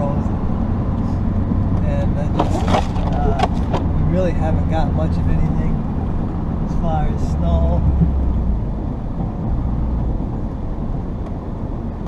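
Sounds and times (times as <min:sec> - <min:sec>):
diesel engine running: 0:00.0 - 0:12.0
knocks and rattles: 0:02.3 - 0:04.0.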